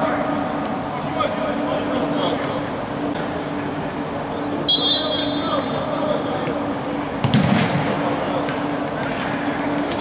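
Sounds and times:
steady low hum: 0:00.0 - 0:10.0
ball struck with sharp bang: 0:07.2 - 0:07.9.

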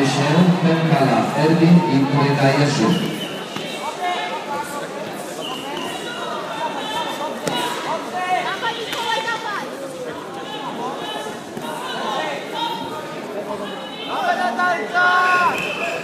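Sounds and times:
many voices talking: 0:00.0 - 0:16.0.

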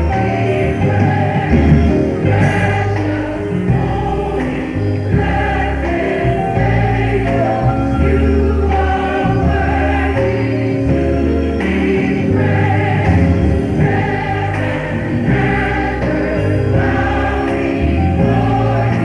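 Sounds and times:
gospel choir singing: 0:00.0 - 0:19.0
held low bass notes: 0:00.0 - 0:19.0
instrumental accompaniment: 0:00.0 - 0:19.0.

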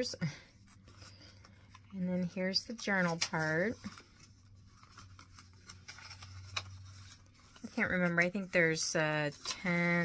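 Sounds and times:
paper pages rustling: 0:00.6 - 0:10.0.

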